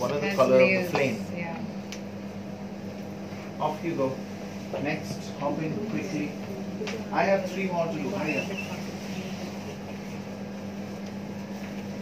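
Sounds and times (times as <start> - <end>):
ceiling fan and air conditioning hum: 0.0 - 12.0.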